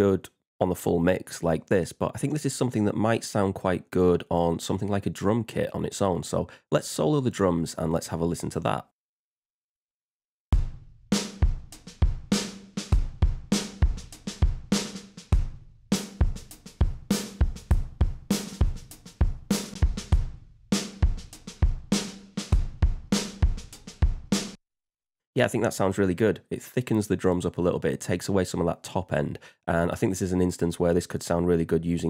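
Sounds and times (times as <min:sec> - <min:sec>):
drum kit playing a groove: 0:10.6 - 0:24.6.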